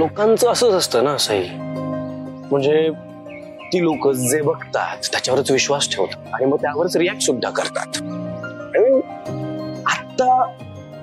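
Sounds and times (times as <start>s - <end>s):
soft sustained background music: 0.0s - 11.0s.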